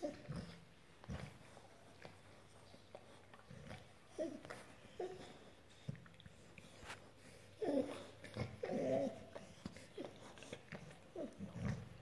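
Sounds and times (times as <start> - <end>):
dog groaning softly: 0.0 - 12.0.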